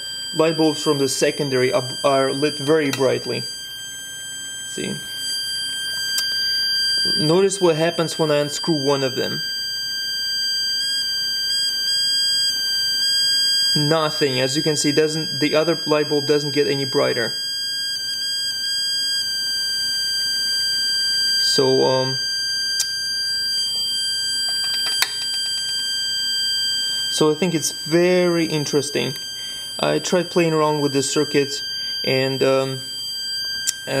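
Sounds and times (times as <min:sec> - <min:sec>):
high-pitched transformer whine: 0:00.0 - 0:34.0.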